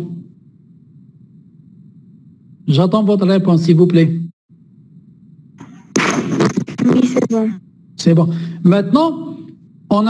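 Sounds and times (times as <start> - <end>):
line noise hum: 0.0 - 10.0.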